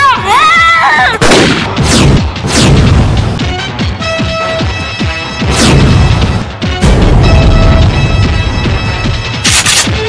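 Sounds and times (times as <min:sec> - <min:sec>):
boy shouting a high call: 0:00.0 - 0:01.2
gunfire sound effect: 0:01.2 - 0:03.1, 0:05.5 - 0:07.4.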